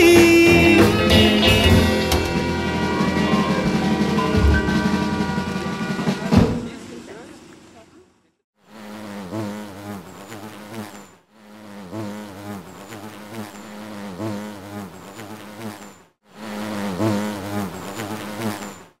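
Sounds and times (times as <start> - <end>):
bee buzzing: 8.6 - 19.0.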